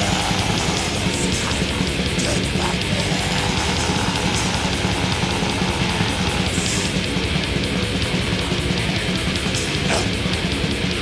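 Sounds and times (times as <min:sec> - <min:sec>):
distorted metal music: 0:00.0 - 0:11.0.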